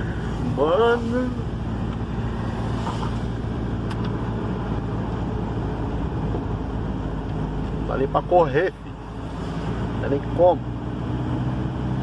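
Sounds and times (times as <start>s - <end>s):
car engine and tyre drone: 0.0s - 12.0s.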